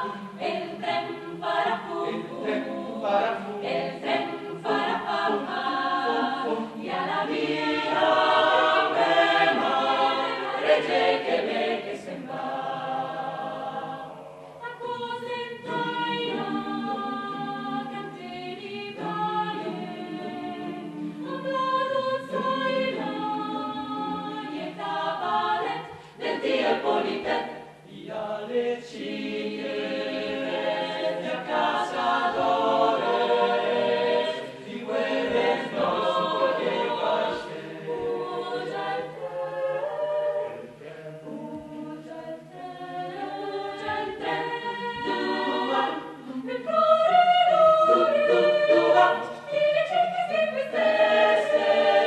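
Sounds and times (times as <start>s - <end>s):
choir singing a cappella: 0.0s - 52.0s.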